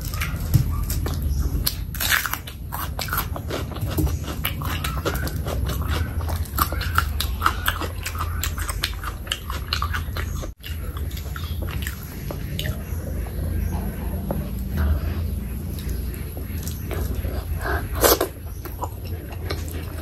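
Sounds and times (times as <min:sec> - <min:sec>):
close-miked chewing: 0:00.0 - 0:20.0
steady low hum: 0:00.0 - 0:20.0.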